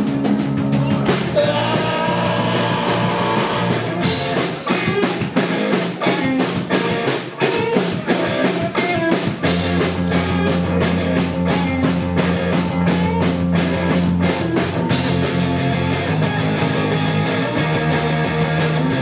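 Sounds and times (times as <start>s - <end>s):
distorted electric guitar: 0.0s - 19.0s
drum kit fast beat: 0.0s - 19.0s.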